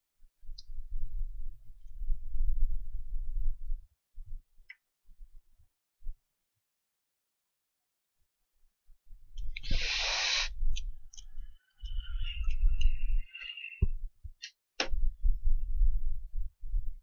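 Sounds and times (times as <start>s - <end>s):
short hiss: 9.6s - 10.6s.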